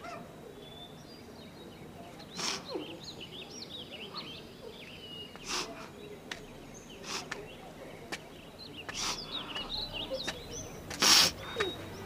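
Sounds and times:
faint birdsong chirps: 0:00.0 - 0:12.0.

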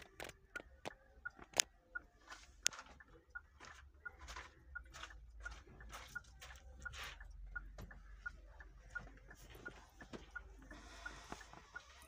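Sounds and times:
electronic ticking: 0:00.0 - 0:12.0.

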